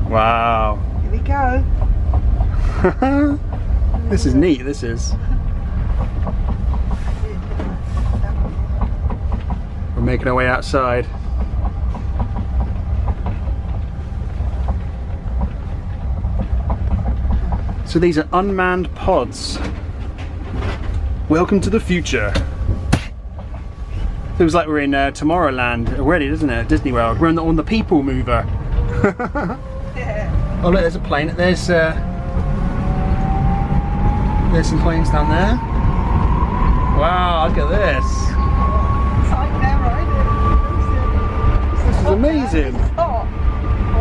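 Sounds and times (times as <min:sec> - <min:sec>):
transit car rumbling: 0:00.0 - 0:44.0
faint clicks and knocks: 0:11.0 - 0:17.9.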